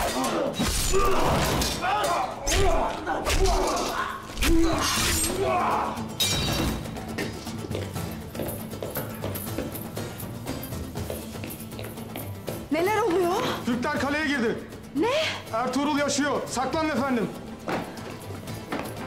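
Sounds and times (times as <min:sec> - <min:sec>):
sword blades clashing: 0:00.0 - 0:05.5
men grunting and crying out: 0:00.0 - 0:06.2
dramatic film score: 0:00.0 - 0:19.0.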